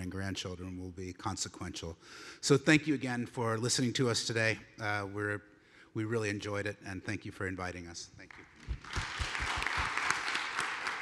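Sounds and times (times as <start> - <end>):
audience applauding: 8.3 - 11.0.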